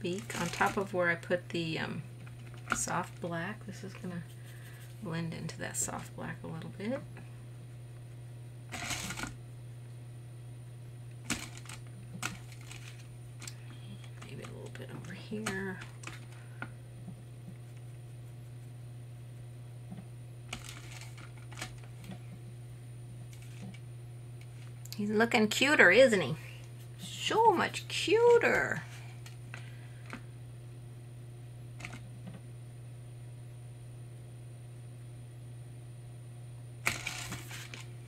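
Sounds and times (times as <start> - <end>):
low hum: 0.0 - 38.0.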